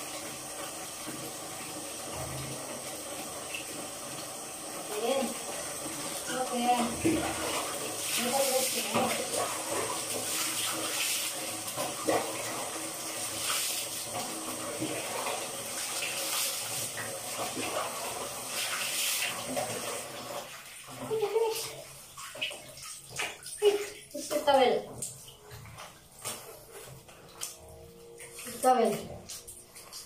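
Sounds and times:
water running and splashing: 0.0 - 30.0.

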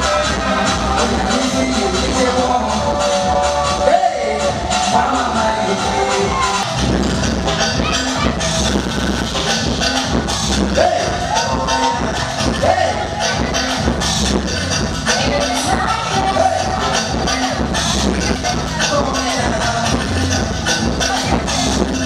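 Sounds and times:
person singing: 0.0 - 6.7, 15.0 - 22.0
loud live band music: 0.0 - 22.0.

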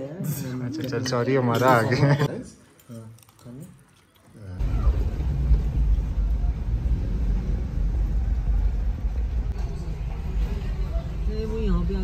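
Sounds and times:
road noise: 4.6 - 12.0.

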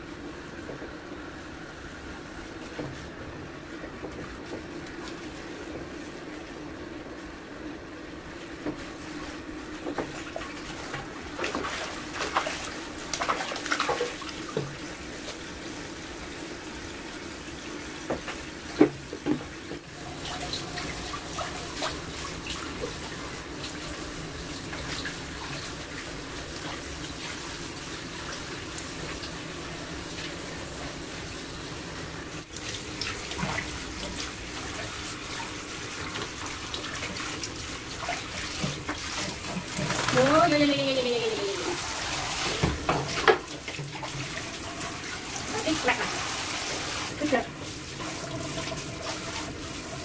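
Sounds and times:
shower water running into basin: 0.0 - 50.0.

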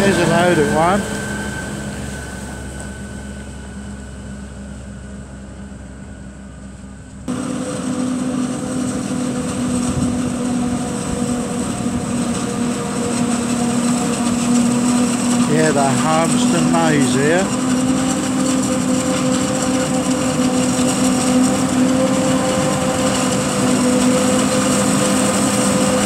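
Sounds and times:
forage harvester drone: 0.0 - 26.0
tractor engine rumble: 0.0 - 26.0.

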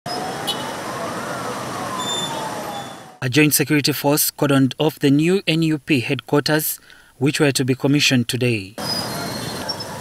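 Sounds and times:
street traffic noise: 0.0 - 3.2, 8.7 - 10.0
siren wailing: 0.1 - 3.2.

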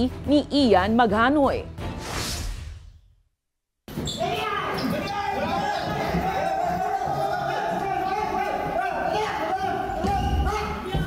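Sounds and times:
men's voices calling out: 3.9 - 11.0.

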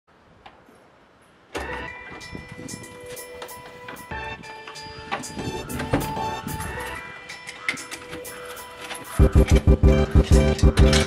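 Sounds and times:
music: 1.5 - 11.0.

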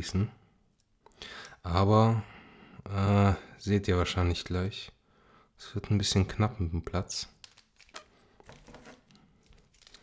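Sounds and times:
plastic wrapping crinkling: 7.3 - 10.0.

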